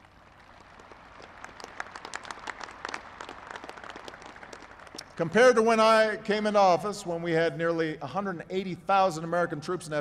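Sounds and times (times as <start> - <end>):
crowd applauding: 0.0 - 5.3.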